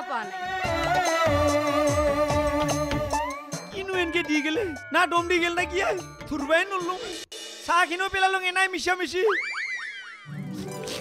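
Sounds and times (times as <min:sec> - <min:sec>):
music: 0:00.0 - 0:08.8, 0:10.3 - 0:11.0.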